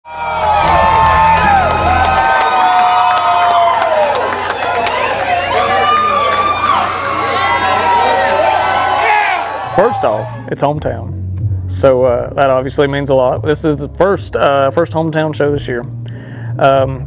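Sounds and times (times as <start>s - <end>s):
crowd cheering and whooping: 0.0s - 10.5s.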